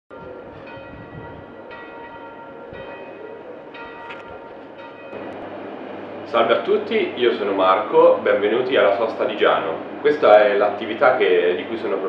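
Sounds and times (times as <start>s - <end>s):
low steady hum: 4.2s - 12.0s.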